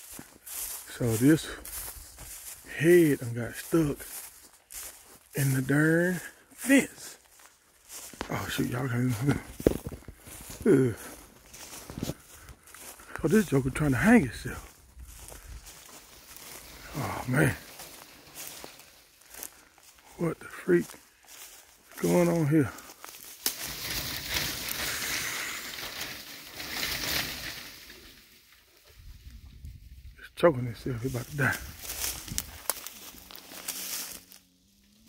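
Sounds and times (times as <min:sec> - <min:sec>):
footsteps in grass: 0:00.0 - 0:35.0
pine branches rustling on microphone: 0:00.0 - 0:35.0.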